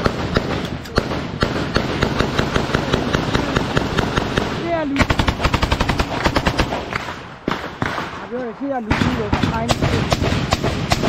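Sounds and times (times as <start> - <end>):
automatic gunfire: 0.0 - 11.0.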